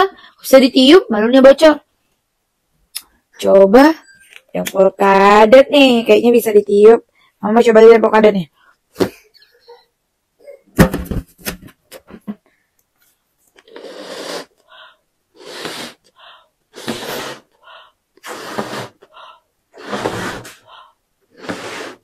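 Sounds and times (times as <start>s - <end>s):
person blowing up balloon: 13.6s - 14.7s, 15.3s - 22.0s.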